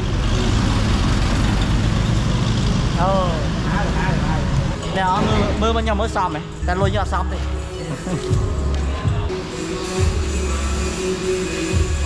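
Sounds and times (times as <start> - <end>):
car engine rumbling: 0.0 - 7.7.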